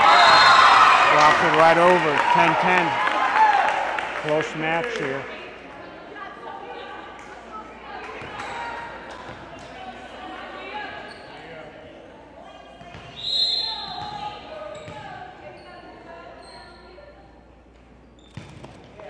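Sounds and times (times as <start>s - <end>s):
voices echoing in a gymnasium: 0.0s - 19.0s
short whistle blast: 13.2s - 13.9s.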